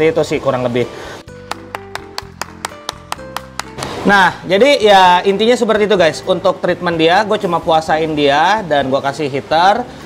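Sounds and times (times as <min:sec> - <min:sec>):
background music with held notes: 0:00.0 - 0:10.0
person clapping: 0:01.3 - 0:04.1.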